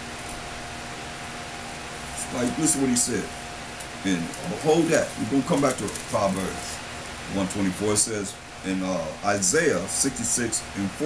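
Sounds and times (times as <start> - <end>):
faint steady hum: 0.0 - 11.0
steady background hiss: 0.0 - 11.0.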